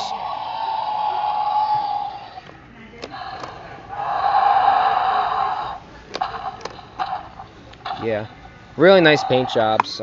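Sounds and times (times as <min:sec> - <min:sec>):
electronic dinosaur roar from toy: 0:00.0 - 0:02.4, 0:03.2 - 0:05.8.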